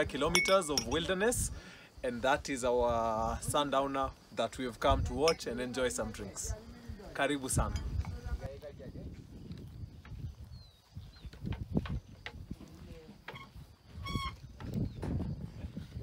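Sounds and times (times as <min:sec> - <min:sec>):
loud high animal call: 0:13.3 - 0:14.5
high animal chirps: 0:13.3 - 0:14.6.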